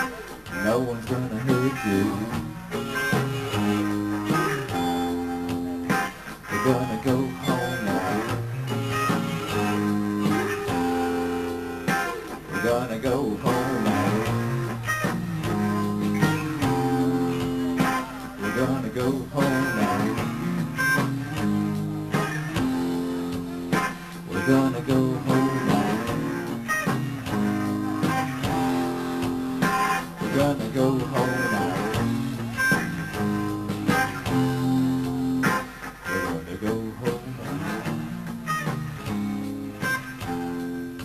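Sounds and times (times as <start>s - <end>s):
live rock band instrumental: 0.0s - 41.0s.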